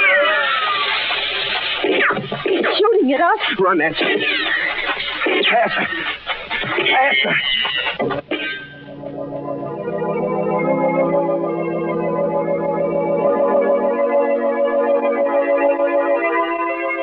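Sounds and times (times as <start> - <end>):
organ chords: 4.8 - 17.0.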